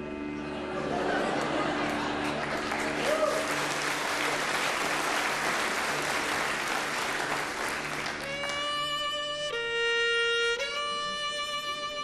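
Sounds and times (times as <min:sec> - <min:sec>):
audience applauding: 0:00.7 - 0:08.8.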